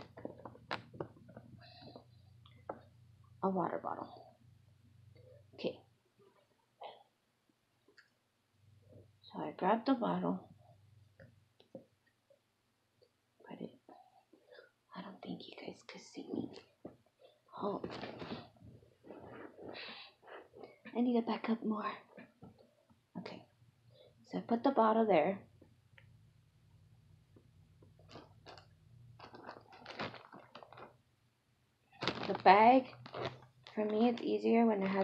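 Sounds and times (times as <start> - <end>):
plastic bag rustling and clicks: 28.0 - 31.0, 32.0 - 34.2.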